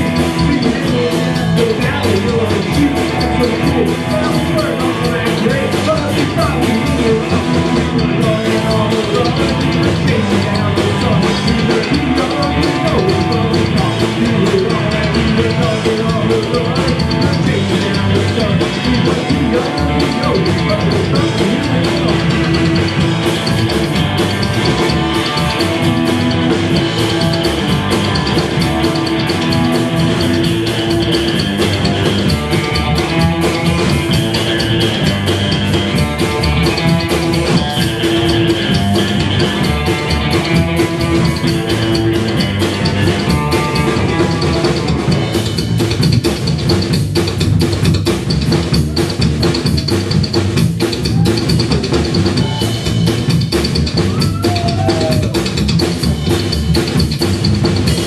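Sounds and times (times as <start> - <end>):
drum kit: 0.0 - 58.0
electric guitar: 0.0 - 58.0
upright double bass: 0.0 - 58.0.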